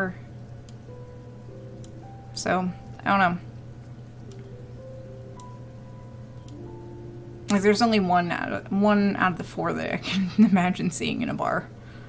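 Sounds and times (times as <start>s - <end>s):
low steady hum: 0.0s - 12.0s
slow sustained background music: 0.0s - 12.0s.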